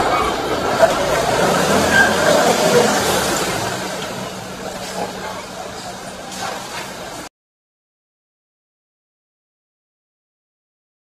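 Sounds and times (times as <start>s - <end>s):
outdoor noise: 0.0s - 7.3s
truck engine pulling away: 0.0s - 7.3s.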